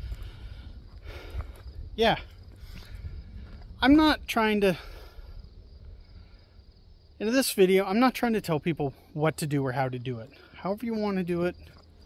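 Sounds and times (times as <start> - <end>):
wind buffeting microphone: 0.0 - 7.1
faint outdoor background noise: 0.0 - 12.0.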